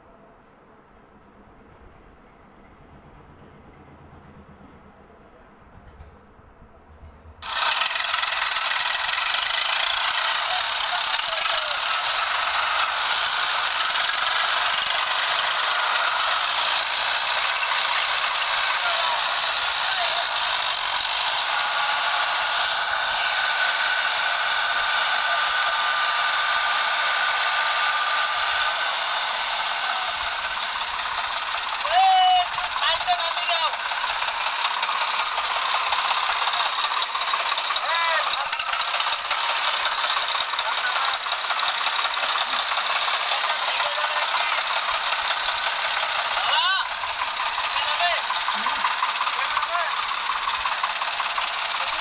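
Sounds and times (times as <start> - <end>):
tractor diesel engines under load: 0.0 - 52.0.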